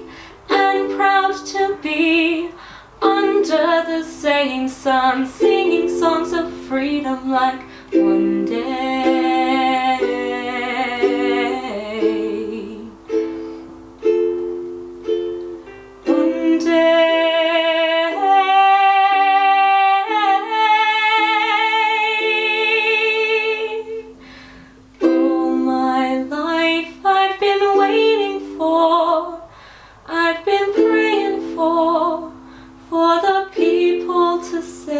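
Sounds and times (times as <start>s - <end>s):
woman singing: 0.0s - 13.5s, 15.5s - 24.3s, 25.0s - 34.9s
ukulele strumming chords: 0.0s - 29.5s, 30.1s - 34.9s.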